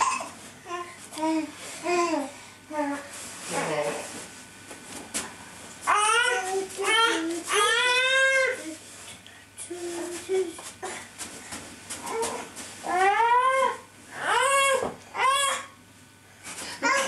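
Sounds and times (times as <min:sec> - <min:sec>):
small child squealing: 0:13.0 - 0:15.7.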